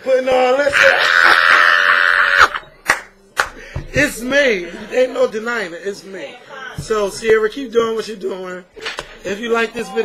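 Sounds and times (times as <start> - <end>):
man shrieking: 0.7 - 2.6
sharp hand claps: 2.8 - 3.6.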